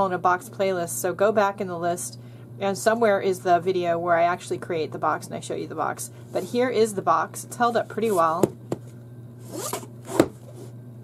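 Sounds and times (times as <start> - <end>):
box knocking on table: 8.4 - 8.9
box scraping on table: 9.4 - 10.7.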